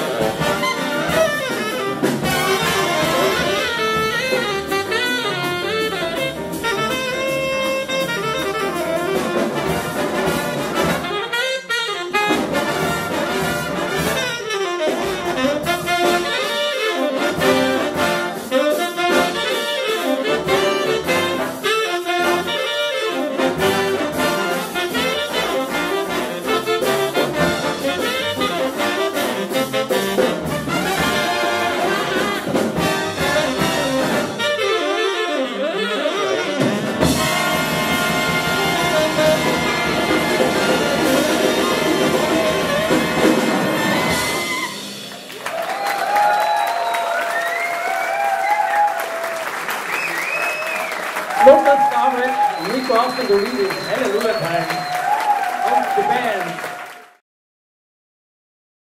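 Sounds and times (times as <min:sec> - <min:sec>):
big band playing swing: 0:00.0 - 0:57.2.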